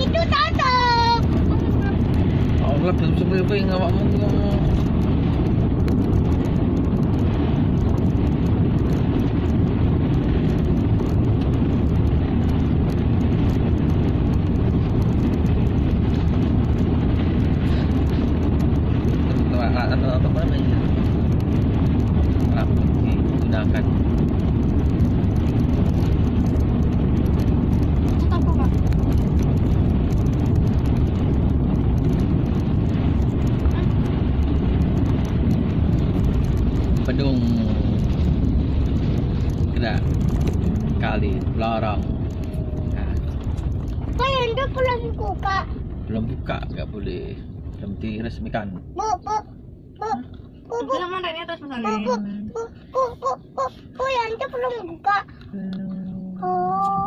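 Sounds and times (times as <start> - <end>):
car engine rumble: 0.0 - 57.0
tyres on rough asphalt: 20.2 - 55.6.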